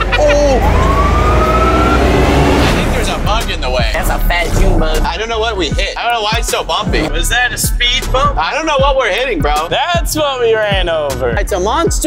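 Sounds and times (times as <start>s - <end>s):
vehicle engine rumble and whine: 0.0s - 5.6s.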